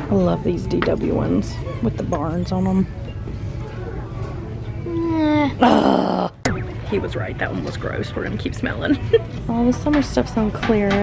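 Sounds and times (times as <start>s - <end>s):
faint music: 0.0s - 11.0s
shop background noise: 0.0s - 11.0s
boy groaning: 4.9s - 6.4s.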